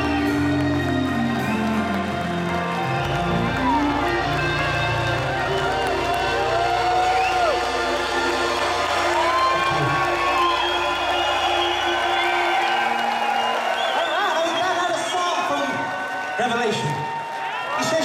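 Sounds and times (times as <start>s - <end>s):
crowd cheering: 0.0s - 18.0s.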